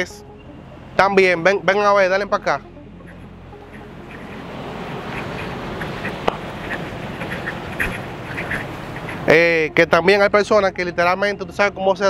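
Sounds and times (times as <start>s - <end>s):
steady rushing background: 0.0s - 10.7s
short animal calls: 5.0s - 9.3s.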